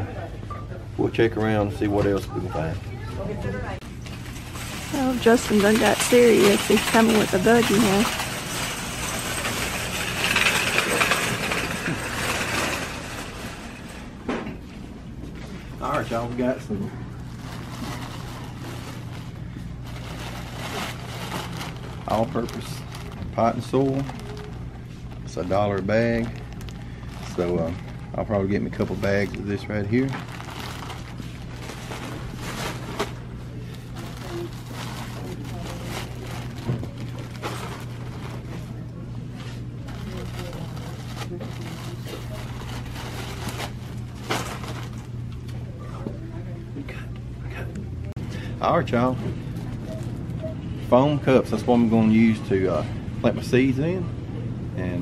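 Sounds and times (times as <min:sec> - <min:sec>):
low hum and hiss: 0:00.0 - 0:55.0
plastic bag rustling: 0:03.8 - 0:14.2, 0:15.6 - 0:45.4.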